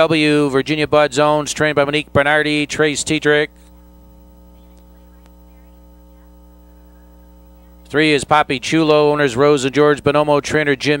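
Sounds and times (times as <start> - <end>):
announcer speaking: 0.0 - 3.5, 4.6 - 11.0
electrical mains hum: 0.0 - 11.0.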